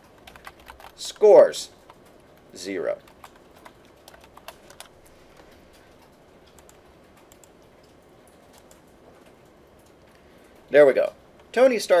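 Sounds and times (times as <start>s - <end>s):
computer keyboard typing: 0.0s - 10.7s.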